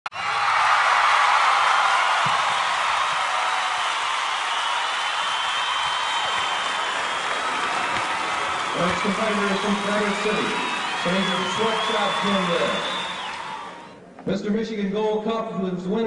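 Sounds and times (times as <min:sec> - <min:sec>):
audience applauding: 0:00.1 - 0:14.0
audience cheering: 0:00.1 - 0:14.0.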